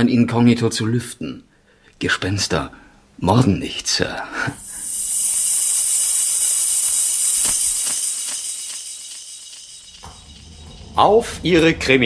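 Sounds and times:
loud high hiss: 4.3 - 10.0.

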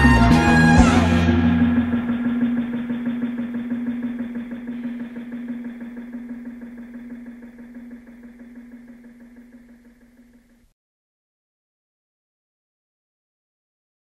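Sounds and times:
engine idling: 0.0 - 10.6.

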